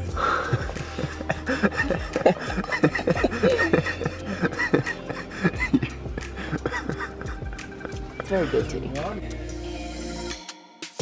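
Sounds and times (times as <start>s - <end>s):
background music bass: 0.0s - 11.0s
woman laughing and giggling: 0.2s - 8.8s.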